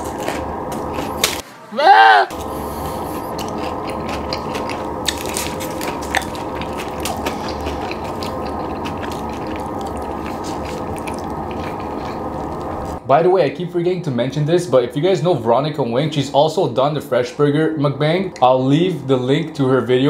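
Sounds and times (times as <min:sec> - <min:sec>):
close chewing mouth noises: 0:02.6 - 0:13.0.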